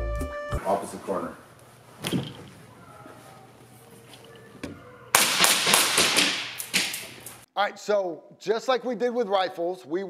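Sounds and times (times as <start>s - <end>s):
pistol shots echoing indoors: 5.1s - 7.4s.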